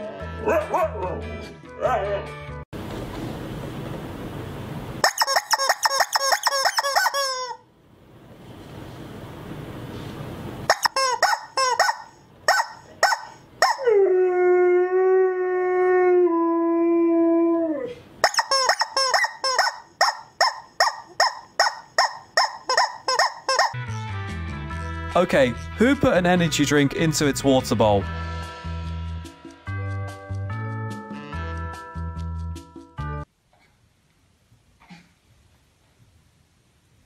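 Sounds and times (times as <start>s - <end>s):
rubber chicken toy squeaking: 5.0s - 7.6s, 10.7s - 13.8s, 18.2s - 23.8s.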